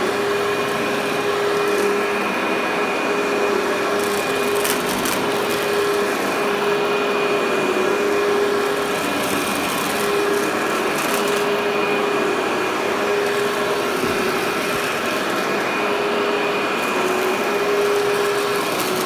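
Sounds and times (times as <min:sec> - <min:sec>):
vacuum cleaner motor whine: 0:00.0 - 0:19.0.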